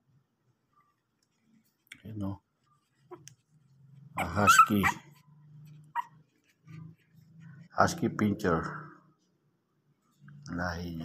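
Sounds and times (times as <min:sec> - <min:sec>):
puppy squeaking: 0:04.0 - 0:06.9
puppy whimpering: 0:04.2 - 0:06.2.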